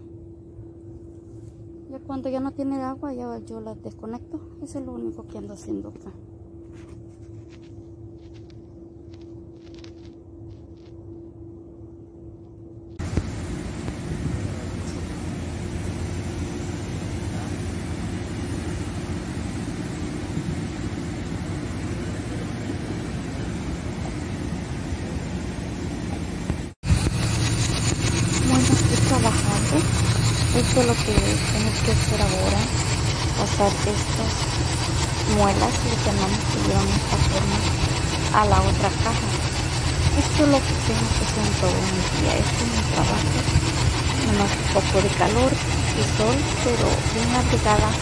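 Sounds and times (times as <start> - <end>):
low hum: 0.0 - 48.0.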